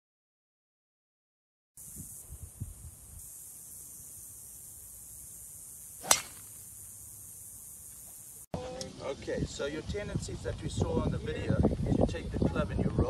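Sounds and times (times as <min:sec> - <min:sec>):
steady high hiss: 0:01.8 - 0:08.5
golf ball crack: 0:03.5 - 0:08.3.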